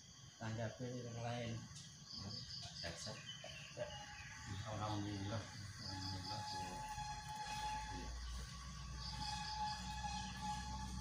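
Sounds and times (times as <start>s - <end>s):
faint high chirps: 1.1s - 11.0s
thin steady tone: 3.8s - 11.0s
steady low hum: 4.3s - 11.0s.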